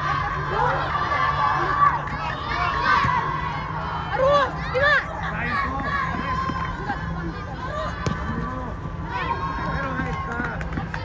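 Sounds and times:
children calling and shouting: 0.0s - 11.0s.

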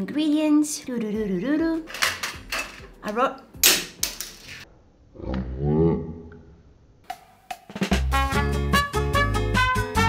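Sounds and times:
voice-like sound with bending pitch: 5.1s - 6.6s
drum hits: 7.1s - 8.3s
upbeat swing music: 7.8s - 10.0s.

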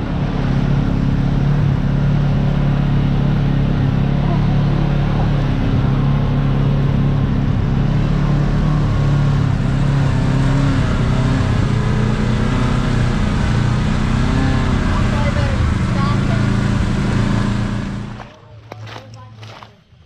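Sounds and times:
engine running at low revs: 0.0s - 20.0s.

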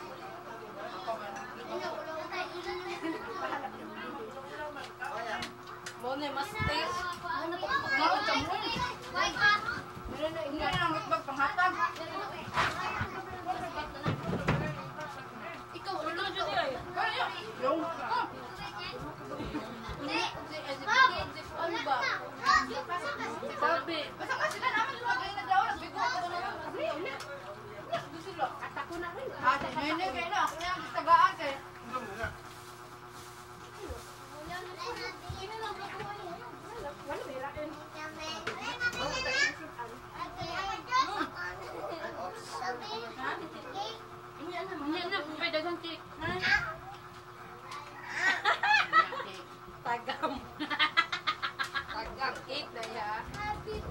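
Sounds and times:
children's voices: 1.7s - 3.7s, 6.6s - 10.1s, 11.8s - 13.9s, 19.8s - 23.7s, 38.0s - 44.1s, 53.2s - 53.9s.

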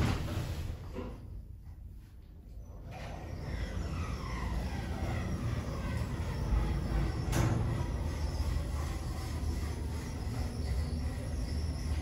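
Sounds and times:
lift motor whine: 2.4s - 12.0s
lift car rumbling: 2.7s - 12.0s.

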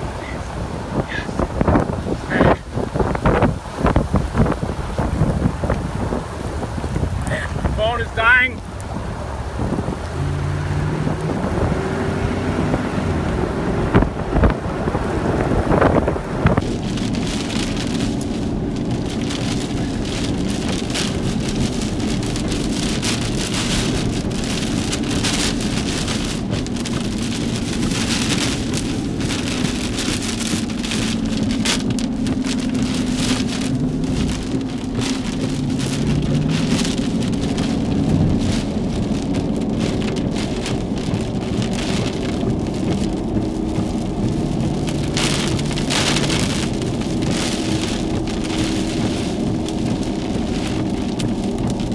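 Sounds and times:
engine and road drone: 0.0s - 51.9s
heavy rain on vehicle roof: 0.0s - 51.9s.

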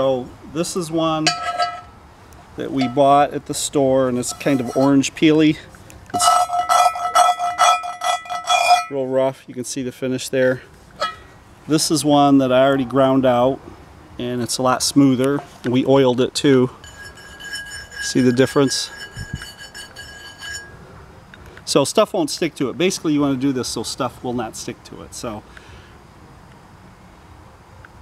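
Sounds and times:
fingertip scratching cast iron: 1.2s - 1.9s, 2.7s - 3.1s, 4.2s - 5.1s, 6.2s - 9.0s, 16.8s - 20.8s
pan ringing: 2.7s - 3.2s, 6.2s - 9.0s, 16.8s - 20.8s.

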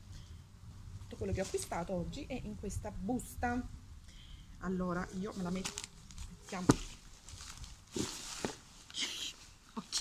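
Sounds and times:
plastic bag rustling: 5.2s - 9.5s.

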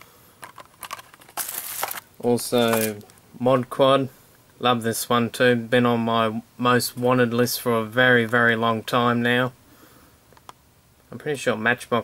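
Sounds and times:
plastic crinkling rustle: 0.4s - 3.2s.

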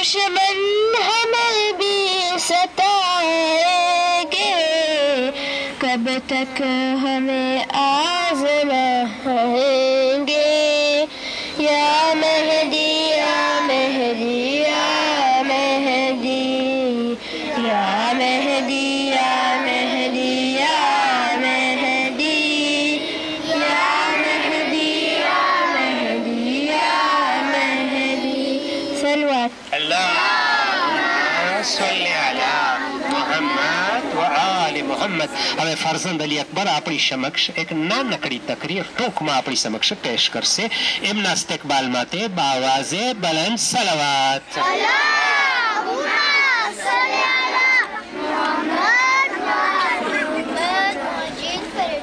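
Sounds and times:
boys chanting in unison: 0.0s - 36.9s, 42.8s - 52.0s.

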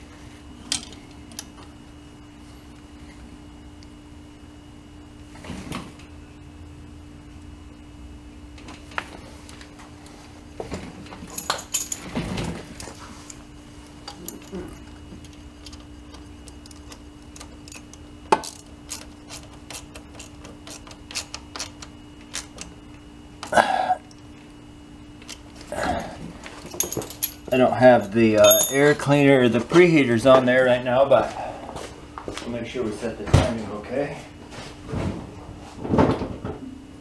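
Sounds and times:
ratchet and hand tools clicking: 16.7s - 22.6s.

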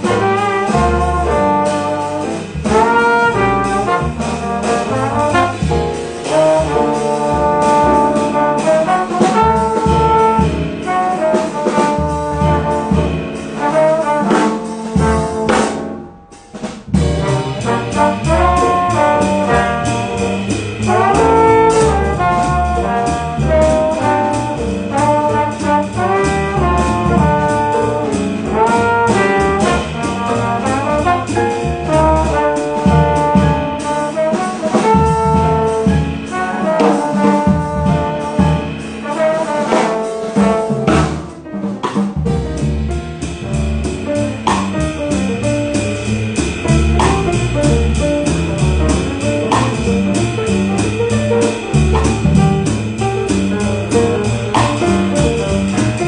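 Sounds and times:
jazz band playing: 0.0s - 56.0s
trombones playing melody: 0.0s - 56.0s.

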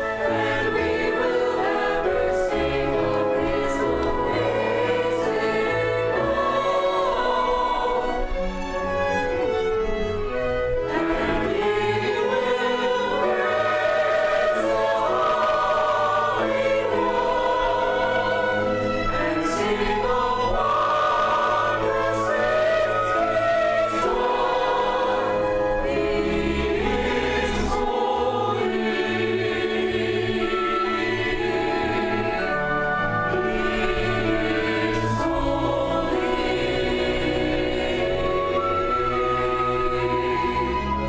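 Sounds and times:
church choir singing: 0.0s - 41.0s
string ensemble: 0.0s - 41.0s.

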